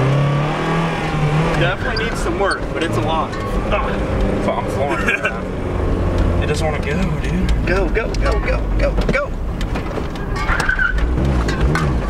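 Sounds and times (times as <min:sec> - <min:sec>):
car engine running rough and surging: 0:00.0 - 0:12.0.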